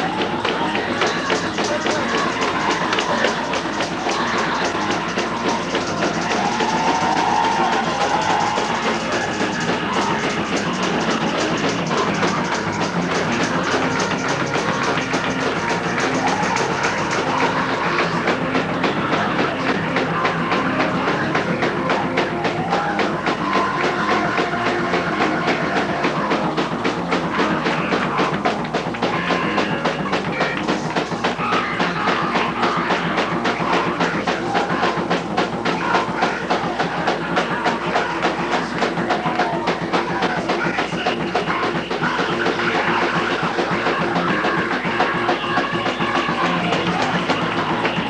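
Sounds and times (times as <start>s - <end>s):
drum kit fast beat: 0.0s - 48.0s
hand clapping: 0.0s - 48.0s.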